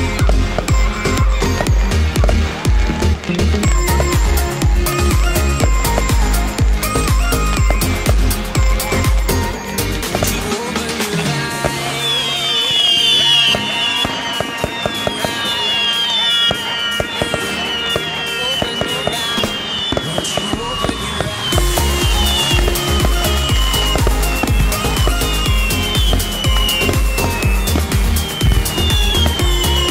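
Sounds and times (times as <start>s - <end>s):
electronic dance music: 0.0s - 29.9s
fireworks bangs and crackles: 0.0s - 29.9s.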